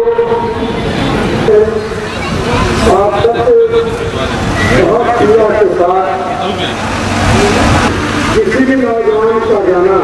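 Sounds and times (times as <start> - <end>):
man talking over loudspeaker: 0.0 - 0.6, 1.4 - 1.9, 2.8 - 6.8, 8.3 - 10.0.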